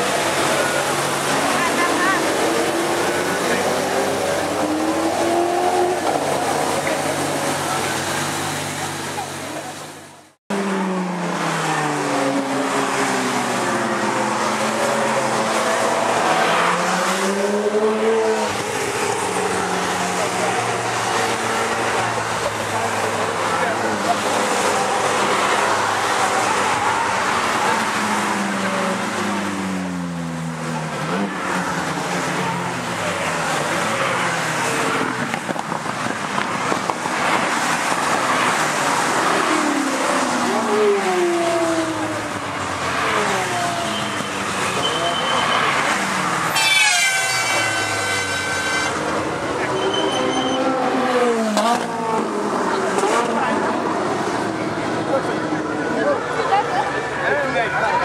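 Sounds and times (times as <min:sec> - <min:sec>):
race car engines passing by: 0:00.0 - 0:58.0
car horn: 0:46.5 - 0:49.0, 0:49.6 - 0:50.7.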